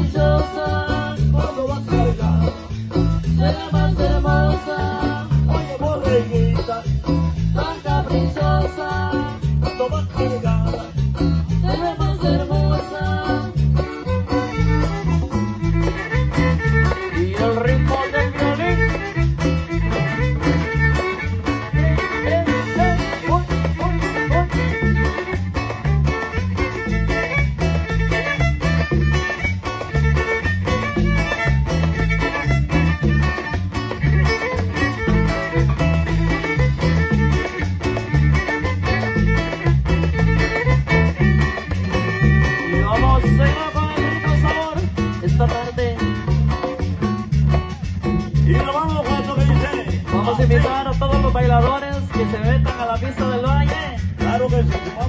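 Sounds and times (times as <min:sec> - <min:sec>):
live tropical dance band: 0:00.0 - 0:55.0.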